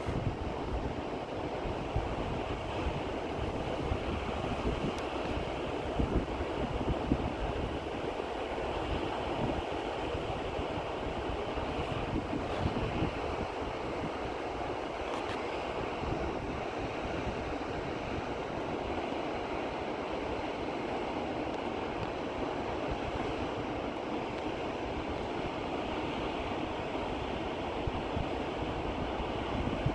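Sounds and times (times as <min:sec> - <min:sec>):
waterfall rushing: 0:00.0 - 0:29.9.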